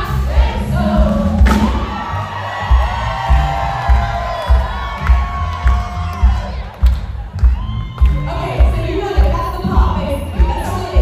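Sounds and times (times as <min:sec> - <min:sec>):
bass drum beat: 0:00.0 - 0:11.0
crowd cheering and shouting: 0:00.0 - 0:11.0
live band music: 0:00.0 - 0:11.0.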